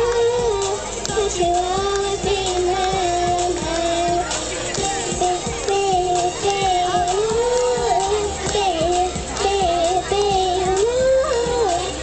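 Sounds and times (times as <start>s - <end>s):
backing track with steady beat: 0.0s - 12.0s
girl singing into a microphone: 0.0s - 12.0s.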